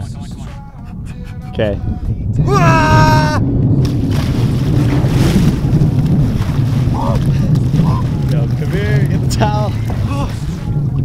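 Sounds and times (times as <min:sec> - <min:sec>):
water churning and splashing: 0:00.0 - 0:11.0
wind rumble on microphone: 0:00.0 - 0:11.0
man yelling: 0:02.4 - 0:03.5, 0:08.1 - 0:10.7.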